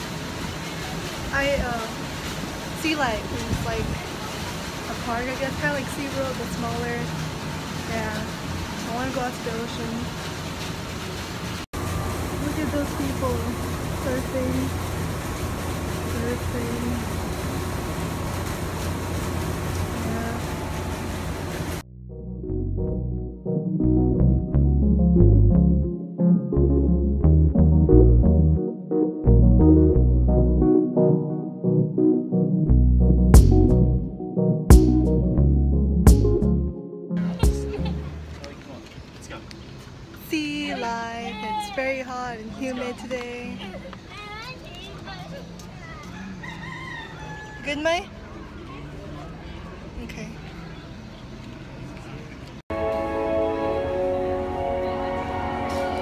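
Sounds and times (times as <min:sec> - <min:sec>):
wind on microphone: 0:03.3 - 0:04.1
electronic music with a beat: 0:32.7 - 0:38.1
rooster crowing: 0:46.0 - 0:48.0.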